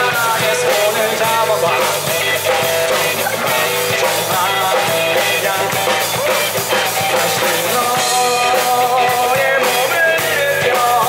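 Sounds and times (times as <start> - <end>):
live rock band playing: 0.0 - 11.0
man singing lead vocal: 0.0 - 11.0.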